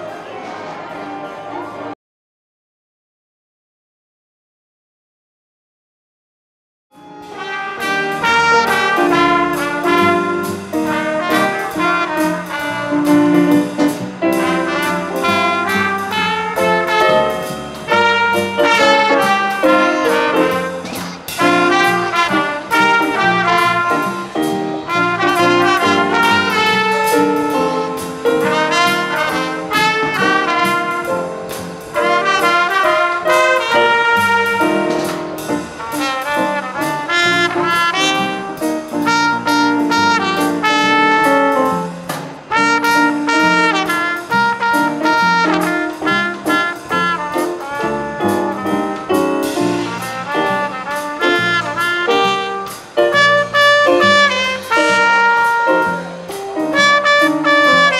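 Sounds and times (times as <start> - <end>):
brass band playing jazz: 7.0 - 57.9.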